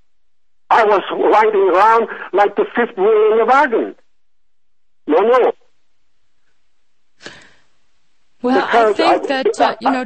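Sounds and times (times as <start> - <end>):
faint steady hiss: 0.0 - 9.8.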